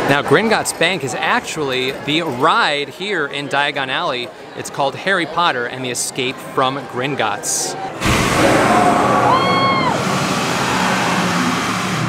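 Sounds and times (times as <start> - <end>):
rushing flame with low rumble: 8.0 - 12.0
person whooping: 8.7 - 11.5.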